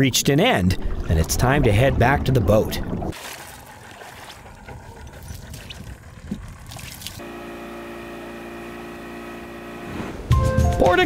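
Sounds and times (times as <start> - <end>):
water splashing and running off: 2.0 - 7.2
boat engine running: 2.8 - 11.0.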